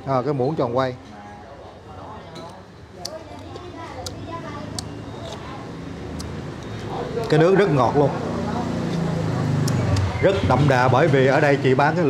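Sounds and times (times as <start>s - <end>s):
diners chattering: 0.0s - 12.0s.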